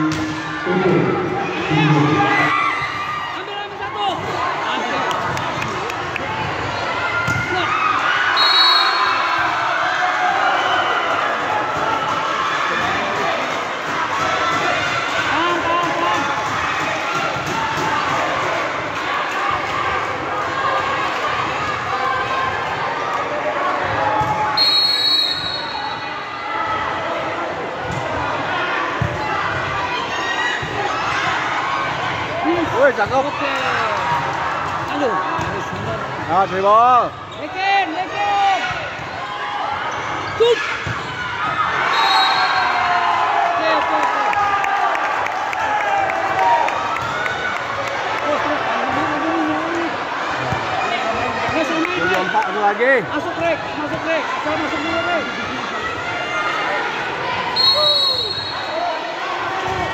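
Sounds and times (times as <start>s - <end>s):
crowd shouting and cheering: 0.0s - 59.9s
short high whistle: 8.4s - 9.2s, 24.6s - 26.0s, 57.6s - 58.8s.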